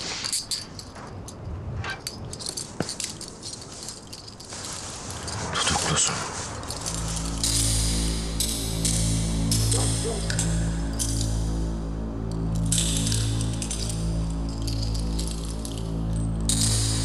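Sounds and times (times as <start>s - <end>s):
light metallic clinks: 0.0s - 5.5s, 6.6s - 11.7s, 12.3s - 17.0s
faint rustling: 0.0s - 8.1s
dramatic score low held notes: 5.3s - 17.0s.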